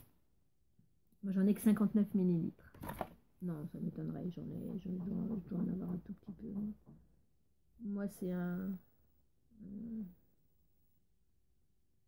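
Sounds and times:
woman humming hmm: 0:09.6 - 0:10.2.

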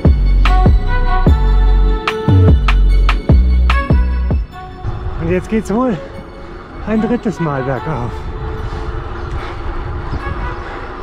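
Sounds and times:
wind buffeting microphone: 0:04.4 - 0:11.0.

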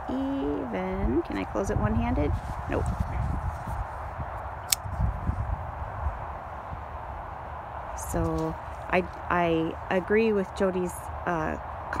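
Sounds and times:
low steady rumble: 0:00.0 - 0:12.0
pocket knife snapping open: 0:04.6 - 0:04.9.

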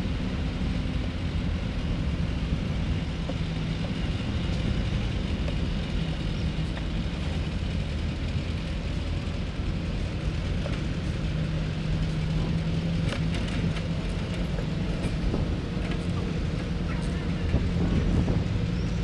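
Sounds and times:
vehicle engines low rumble: 0:00.0 - 0:19.0.

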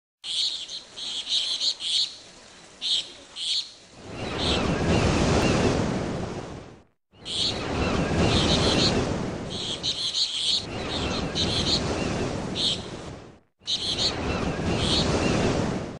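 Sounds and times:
birds chirping: 0:00.2 - 0:05.7, 0:07.1 - 0:13.0, 0:13.6 - 0:15.4
surf-like rushing noise: 0:03.8 - 0:15.9.

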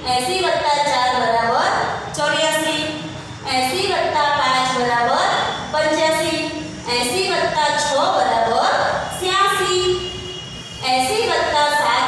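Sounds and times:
woman reading aloud: 0:10.8 - 0:12.0.

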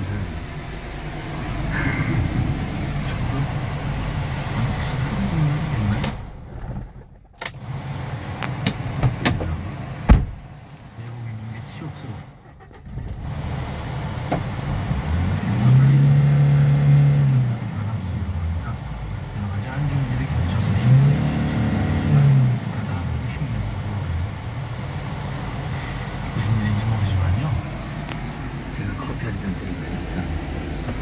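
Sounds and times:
truck engine idling and revving: 0:00.0 - 0:31.0
truck engine starting: 0:00.0 - 0:31.0.

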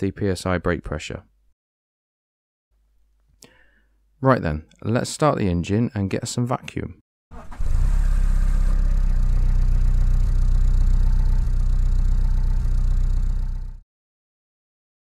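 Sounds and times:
engine starting and idling: 0:07.3 - 0:13.8.

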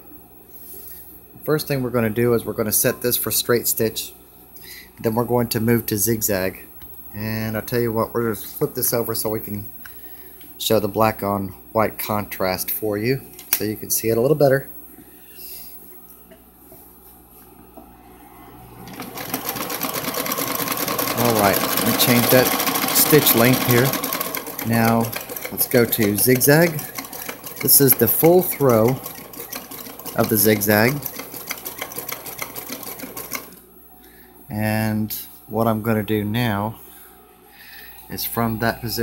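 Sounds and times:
low electrical hum: 0:00.0 - 0:39.0
sewing machine clicking: 0:18.8 - 0:33.6.

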